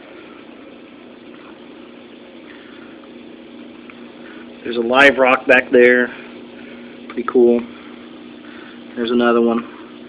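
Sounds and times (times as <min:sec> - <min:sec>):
aquarium bubbling air: 0:00.0 - 0:10.0.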